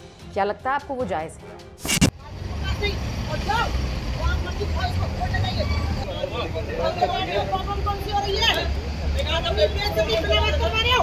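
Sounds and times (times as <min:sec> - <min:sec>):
road vehicles idling and passing: 0:02.1 - 0:11.0.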